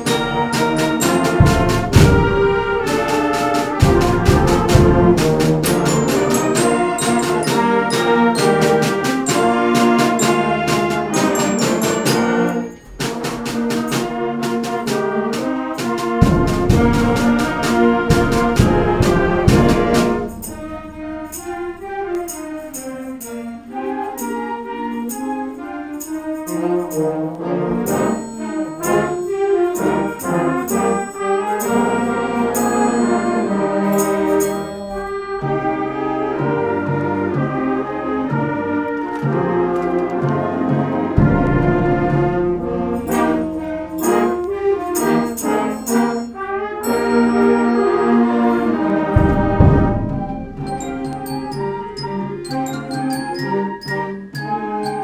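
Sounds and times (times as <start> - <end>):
snare drum strokes: 0.0 - 23.4, 26.1 - 54.8
concert band playing a march: 0.0 - 55.0
bass drum strokes: 0.1 - 6.3, 16.1 - 22.6, 41.1 - 45.2, 48.4 - 52.2.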